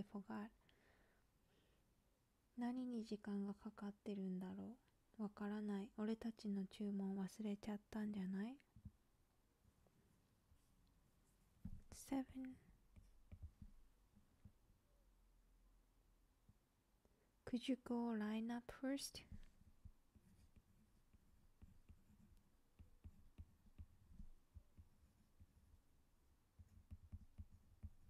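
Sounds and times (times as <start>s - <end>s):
stylus tapping tablet screen: 11.6s - 14.8s, 19.2s - 28.0s
woman whispering: 11.9s - 12.8s
stylus tapping on glass screen: 12.9s - 13.8s.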